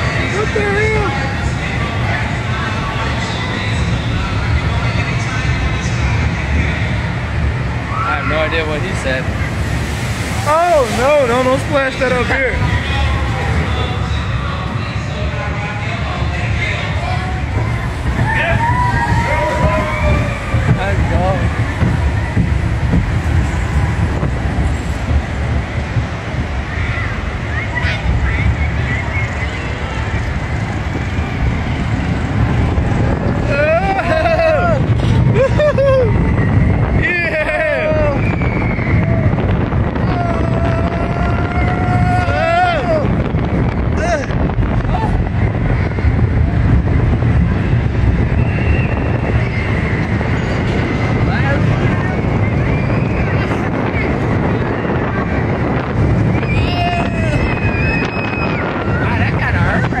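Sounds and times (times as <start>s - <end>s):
riders shouting and screaming: 0.0s - 60.0s
roller coaster rumbling on track: 0.0s - 60.0s
wind on microphone: 0.0s - 60.0s.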